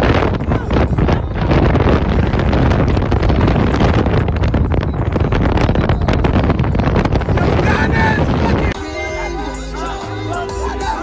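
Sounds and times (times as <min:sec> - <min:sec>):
wind buffeting microphone: 0:00.0 - 0:08.8
car road and engine noise: 0:00.0 - 0:11.0.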